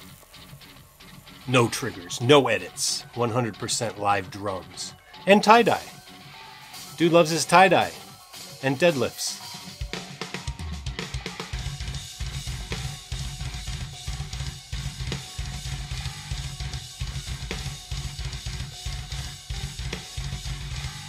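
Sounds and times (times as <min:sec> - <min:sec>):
metal band track: 0:00.0 - 0:21.0
acoustic drum kit playing: 0:05.3 - 0:05.9.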